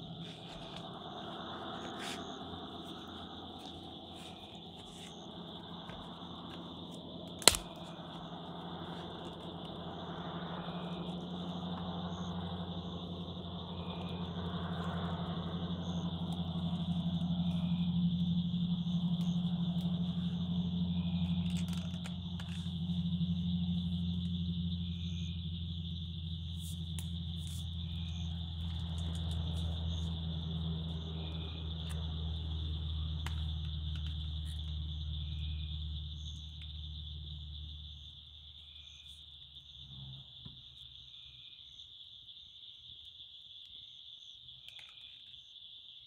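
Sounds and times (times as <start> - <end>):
low steady hum: 0.0 - 38.2
night insects chorus: 0.0 - 46.0
sharp click: 7.4 - 7.8.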